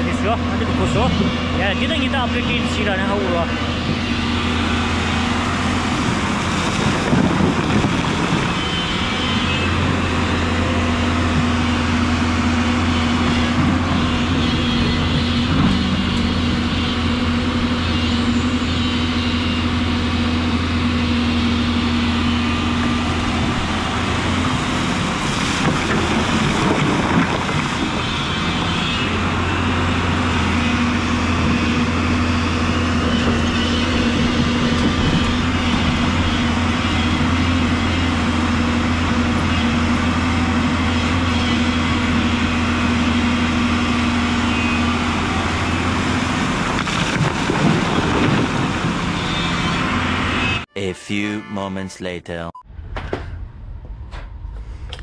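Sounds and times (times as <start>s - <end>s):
excavator diesel engine running: 0.0s - 51.4s
bucket digging and splashing: 45.9s - 48.8s.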